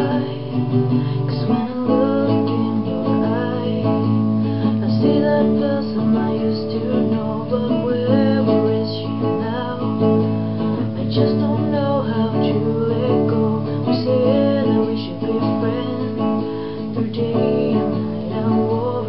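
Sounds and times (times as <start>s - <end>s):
acoustic guitar strumming with melody: 0.0s - 19.0s.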